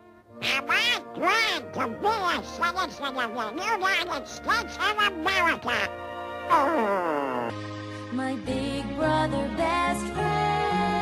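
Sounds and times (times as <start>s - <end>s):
soft orchestral music: 0.0s - 6.7s
cartoon duck quacking voice: 0.4s - 7.5s.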